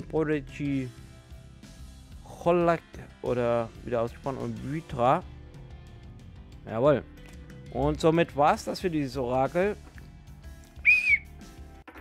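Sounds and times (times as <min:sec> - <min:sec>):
quiet background music: 0:00.0 - 0:12.0
high whistle blast: 0:10.8 - 0:11.3.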